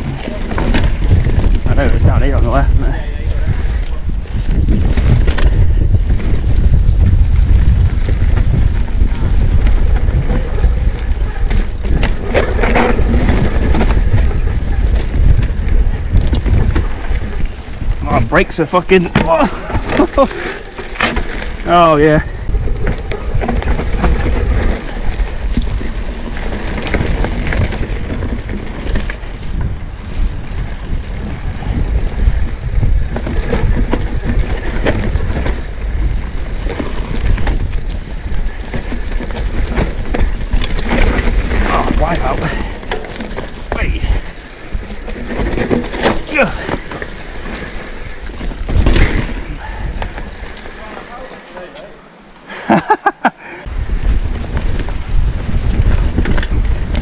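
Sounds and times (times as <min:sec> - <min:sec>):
bike knocking and rattling: 0:00.0 - 0:52.0, 0:53.7 - 0:57.0
tyres rumbling over dirt: 0:00.0 - 0:52.2.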